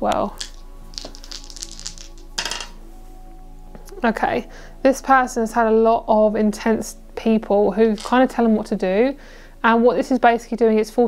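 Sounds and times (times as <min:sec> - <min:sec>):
soft background music: 0:00.0 - 0:11.0
dice clattering onto cards: 0:00.2 - 0:02.8
dice rattling in hand: 0:00.4 - 0:02.8.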